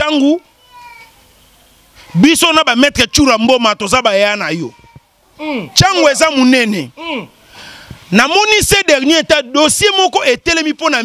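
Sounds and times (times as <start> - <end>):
man exclaiming: 5.4 - 7.4.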